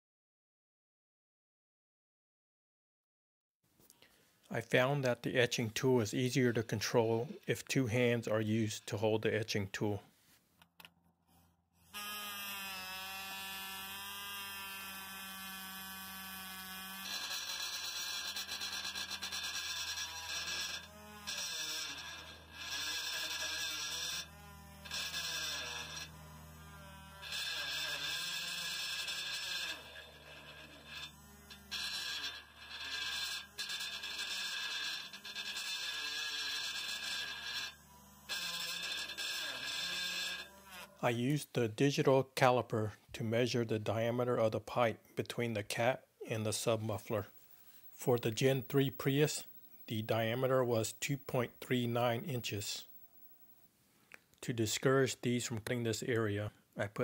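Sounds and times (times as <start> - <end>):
electric etching tool buzzing: 11.3 - 41.0, 46.6 - 53.7.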